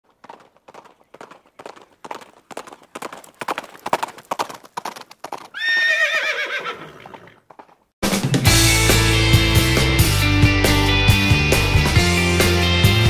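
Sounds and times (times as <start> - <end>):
horse hooves clip-clopping: 0.0 - 7.9
horse whinnying: 5.5 - 7.5.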